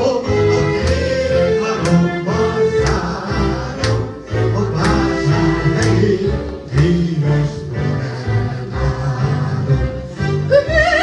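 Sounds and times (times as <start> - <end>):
man and woman singing duet: 0.0 - 11.0.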